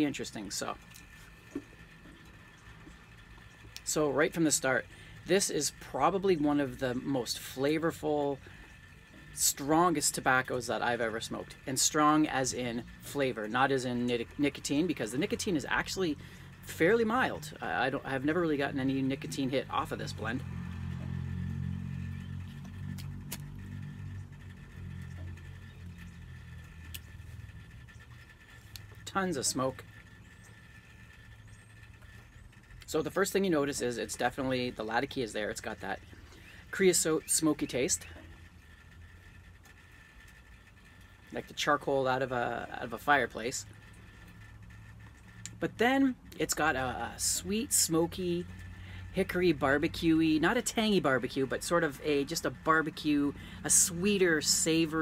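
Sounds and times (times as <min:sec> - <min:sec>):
car engine rumbling: 0:00.0 - 0:55.0.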